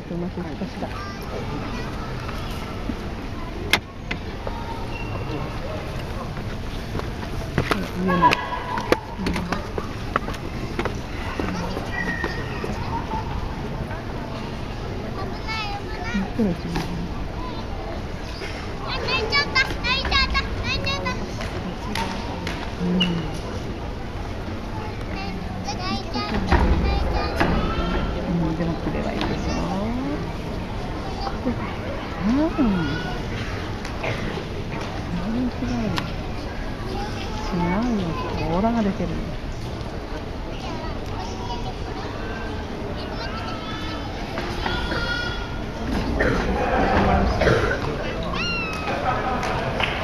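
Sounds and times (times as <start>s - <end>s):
sports hall background noise: 0.0s - 50.0s
child's high-pitched voice: 15.2s - 16.6s.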